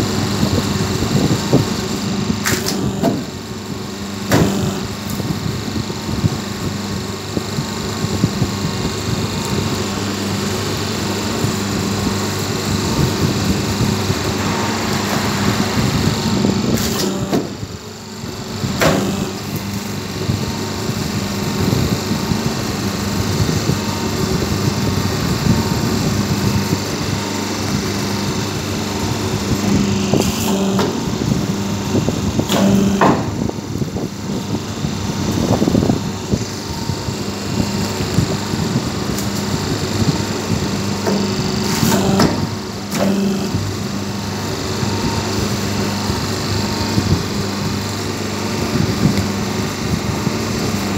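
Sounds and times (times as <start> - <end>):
machine humming: 0.0 - 50.9.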